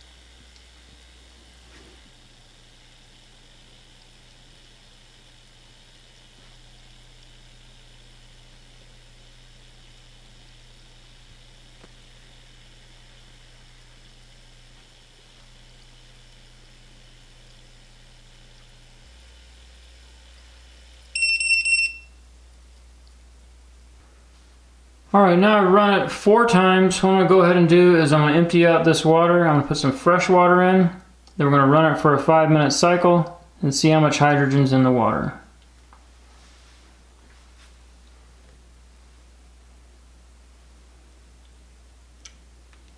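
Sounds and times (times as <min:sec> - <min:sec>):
faint steady hiss: 0:00.0 - 0:42.9
high-pitched electronic beeps: 0:21.2 - 0:22.2.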